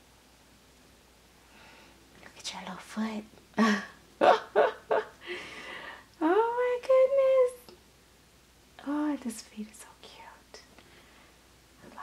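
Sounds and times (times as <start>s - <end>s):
woman whispering: 2.2s - 3.3s, 8.8s - 10.7s, 11.8s - 12.0s.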